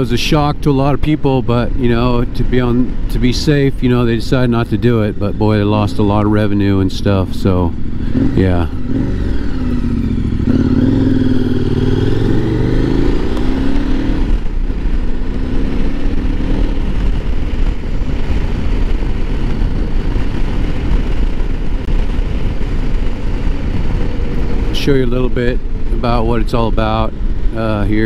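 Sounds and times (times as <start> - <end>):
motorcycle engine accelerating: 0.0 - 28.0
wind rushing over microphone: 0.0 - 28.0.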